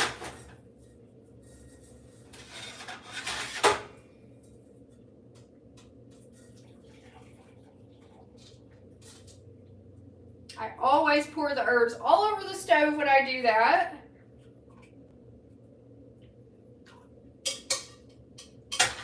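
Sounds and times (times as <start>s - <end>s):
liquid pouring: 6.2s - 9.3s
metal pot clattering: 17.5s - 19.0s.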